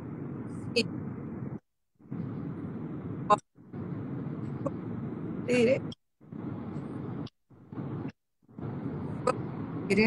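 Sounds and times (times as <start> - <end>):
car cabin noise: 0.0 - 10.0.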